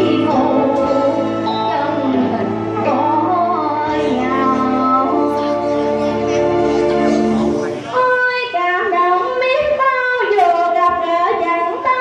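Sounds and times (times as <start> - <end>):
women singing into microphones: 0.0 - 6.0.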